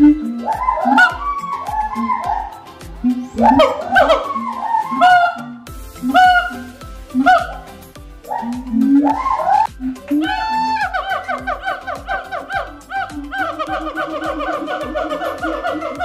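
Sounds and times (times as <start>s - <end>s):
gibbons whooping calls: 0.0s - 16.0s.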